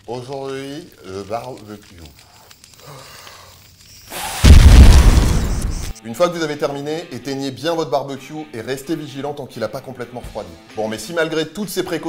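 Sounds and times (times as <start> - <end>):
deep rumbling explosion boom: 4.4 - 5.9.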